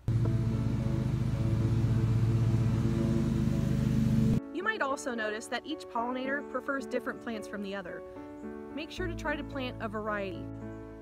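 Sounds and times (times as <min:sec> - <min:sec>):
engine running steadily: 0:00.0 - 0:04.4.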